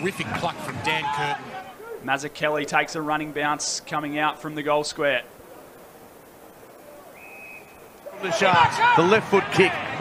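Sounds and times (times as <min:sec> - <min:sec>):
quiet crowd ambience: 0:00.0 - 0:10.0
high referee whistle: 0:07.1 - 0:07.9.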